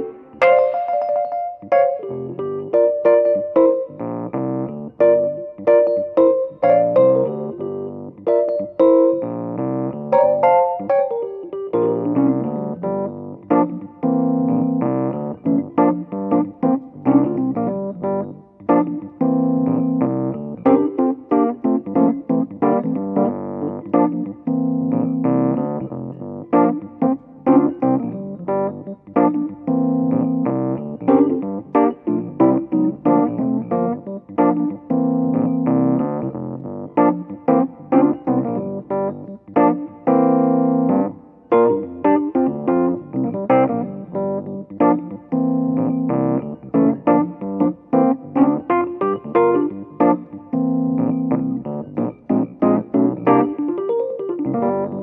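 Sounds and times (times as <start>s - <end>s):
funky electric piano groove: 0.0s - 55.0s.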